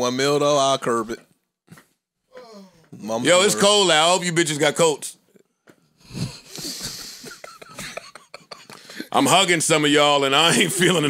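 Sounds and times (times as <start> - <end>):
men laughing breathily: 6.0 - 9.3.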